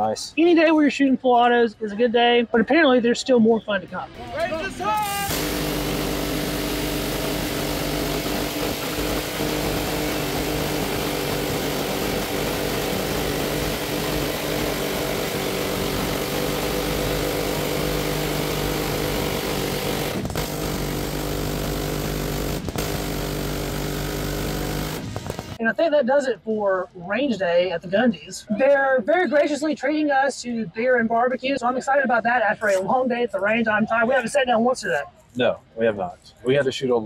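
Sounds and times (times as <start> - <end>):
miniguns buzzing: 5.3 - 25.6
automatic gunfire: 20.1 - 25.6.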